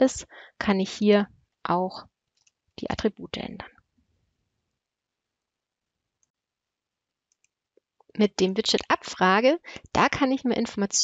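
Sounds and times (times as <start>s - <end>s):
computer mouse clicks: 7.3s - 7.6s.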